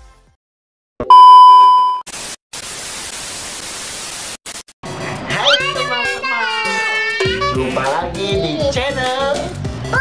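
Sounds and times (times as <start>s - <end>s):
loud steady beep: 1.1s - 2.0s
tv static hiss: 2.1s - 4.7s.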